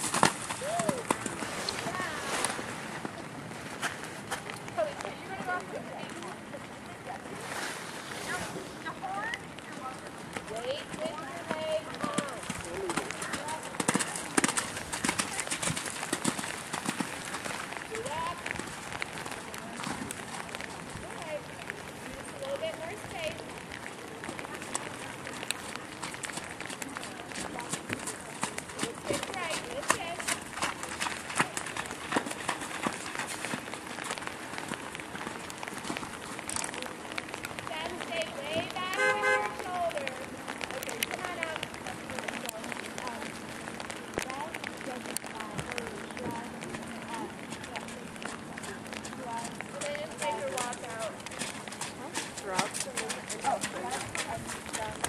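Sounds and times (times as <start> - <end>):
horse hoofbeats on wet footing: 0.0 - 6.3, 8.4 - 55.0.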